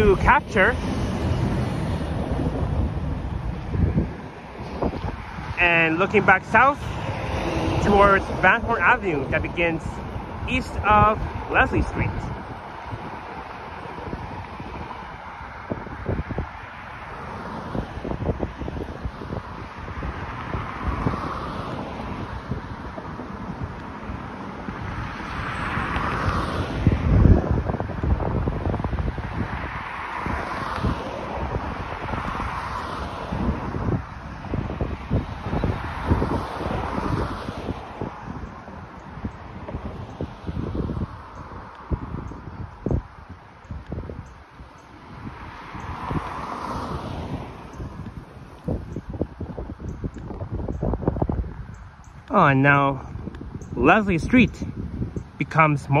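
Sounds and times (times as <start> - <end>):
cars passing: 0.0 - 56.0
wind buffeting microphone: 0.0 - 56.0.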